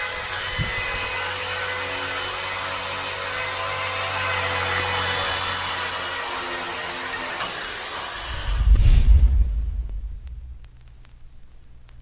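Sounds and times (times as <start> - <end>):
rc helicopter motor whine: 0.0 - 8.7.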